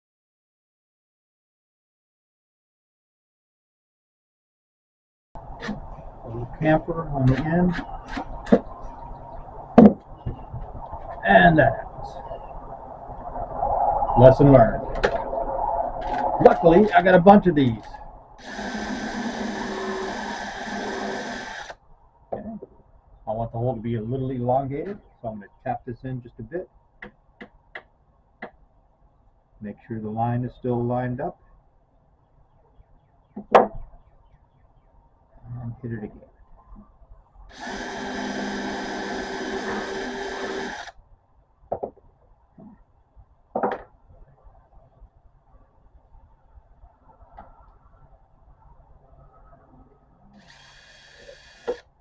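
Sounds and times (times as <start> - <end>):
cordless drill drilling wood: 18.4 - 21.8, 37.5 - 41.0, 50.4 - 51.9.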